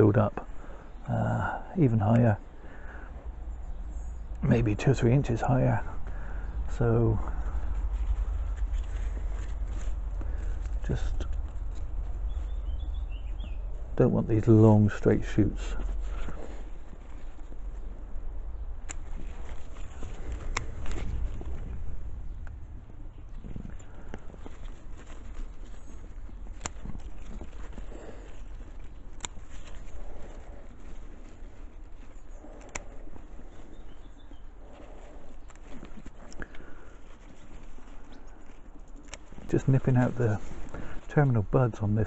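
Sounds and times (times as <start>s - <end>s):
leaves rustling: 0.0s - 42.0s
low rumble: 2.5s - 31.8s.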